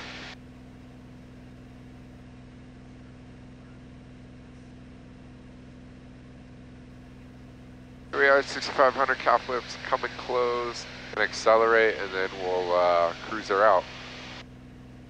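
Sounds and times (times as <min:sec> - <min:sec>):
propeller plane engine drone: 0:00.0 - 0:15.0.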